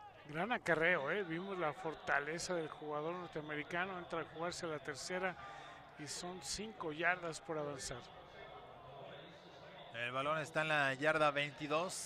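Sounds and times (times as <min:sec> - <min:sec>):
faint stadium ambience: 0:00.0 - 0:12.0.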